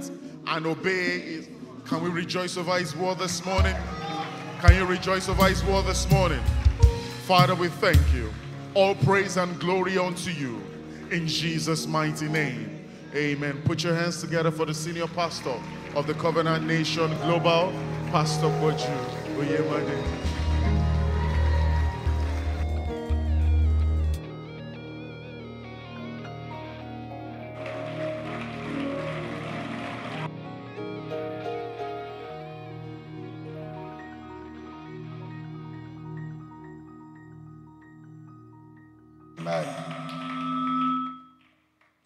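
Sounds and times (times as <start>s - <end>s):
congregation cheering and shouting: 0.0s - 24.4s, 27.3s - 30.6s, 39.4s - 40.5s
sustained keyboard chords: 0.0s - 41.0s.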